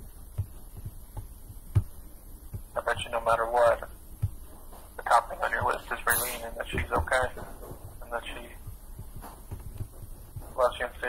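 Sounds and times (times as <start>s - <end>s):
soft low thuds: 0.0s - 11.0s
person speaking: 2.6s - 9.2s, 9.8s - 11.0s.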